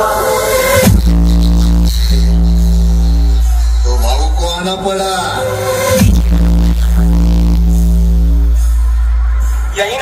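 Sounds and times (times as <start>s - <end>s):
electronic dance music bass note: 0.0s - 10.0s.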